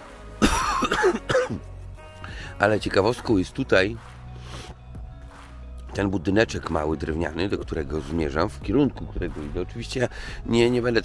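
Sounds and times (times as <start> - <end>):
man coughing: 0.4 - 1.6.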